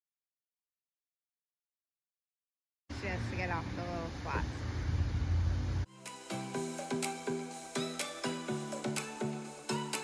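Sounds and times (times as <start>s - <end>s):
low outdoor rumble: 2.9s - 5.9s.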